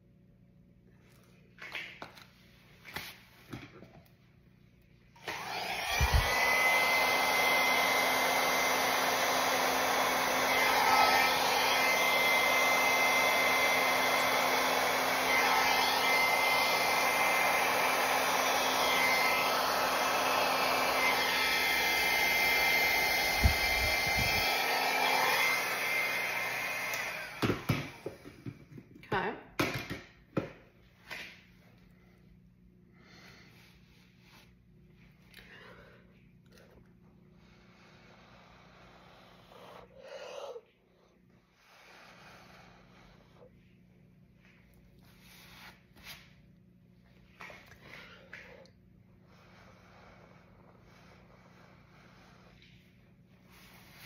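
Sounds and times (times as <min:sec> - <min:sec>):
hair dryer blowing with high whine: 0:05.1 - 0:28.6, 0:37.4 - 0:40.6, 0:41.4 - 0:43.5.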